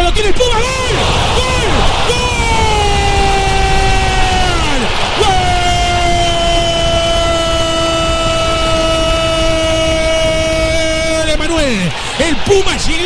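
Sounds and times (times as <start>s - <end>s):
broadcast crowd noise: 0.0s - 13.0s
commentator shouting goal: 0.0s - 13.0s.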